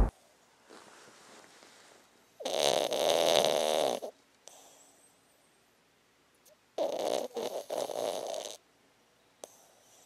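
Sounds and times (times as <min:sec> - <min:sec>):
dog snoring: 0:02.4 - 0:05.0, 0:06.8 - 0:08.6, 0:09.4 - 0:10.0.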